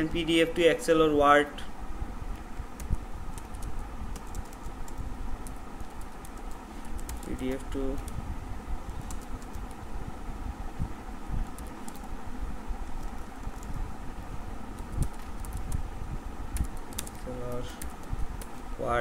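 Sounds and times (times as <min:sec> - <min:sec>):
steady background hum: 0:00.0 - 0:19.0
computer keyboard typing: 0:02.8 - 0:08.2, 0:08.9 - 0:09.8, 0:11.4 - 0:12.1, 0:12.8 - 0:13.8, 0:14.7 - 0:15.8, 0:16.6 - 0:18.6.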